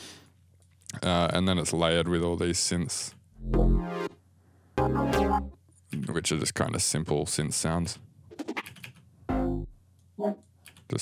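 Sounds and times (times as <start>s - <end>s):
short low synth note: 3.4s - 4.0s
keyboard and mouse clicks: 8.6s - 9.0s.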